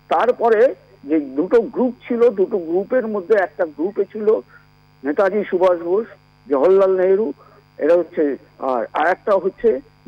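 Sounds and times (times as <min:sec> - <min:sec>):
electrical hum on phone line: 0:00.0 - 0:10.0.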